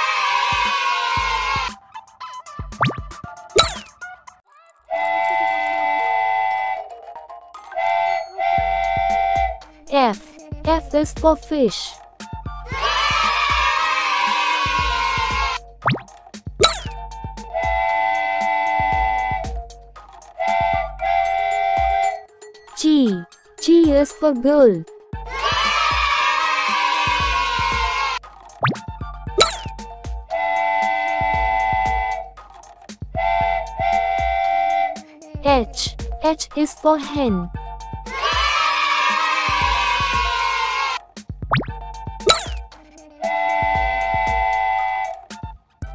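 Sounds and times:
children's background music: 0:00.0 - 0:45.9
cartoon steam-train whistle: 0:04.9 - 0:09.7, 0:17.3 - 0:19.6, 0:20.3 - 0:22.3, 0:29.4 - 0:32.4, 0:33.1 - 0:35.2, 0:43.2 - 0:45.5
music beat of low thumps: 0:14.8 - 0:17.8, 0:18.7 - 0:21.0, 0:27.1 - 0:30.3, 0:31.2 - 0:34.4, 0:35.3 - 0:36.3, 0:37.2 - 0:38.6, 0:39.6 - 0:40.4, 0:41.2 - 0:42.8, 0:43.4 - 0:44.7.

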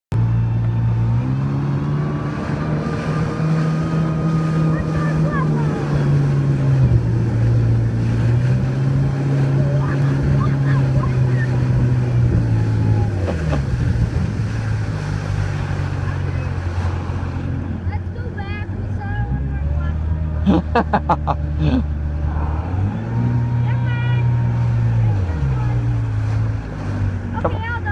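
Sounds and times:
boat motor running: 0:00.1 - 0:27.9
water noise: 0:00.1 - 0:27.9
wind noise: 0:06.7 - 0:15.2.

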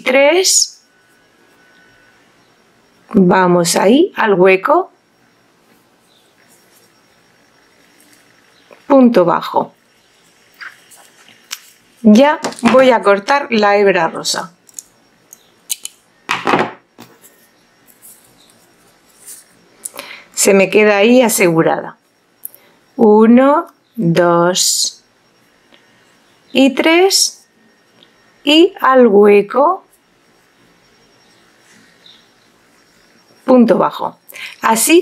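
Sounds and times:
faint steady hiss: 0:00.0 - 0:16.3
faint rustling of yarn: 0:05.6 - 0:07.0
soft rustle: 0:05.6 - 0:08.5, 0:17.2 - 0:19.7.

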